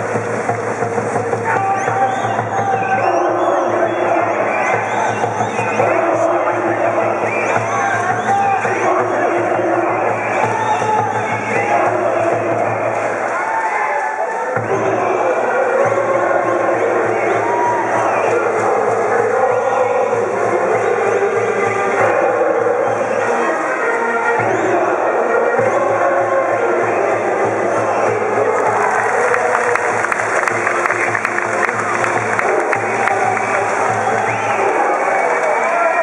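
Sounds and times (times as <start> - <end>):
brass band playing: 0.0 - 36.0
crowd shouting and chanting: 0.0 - 36.0.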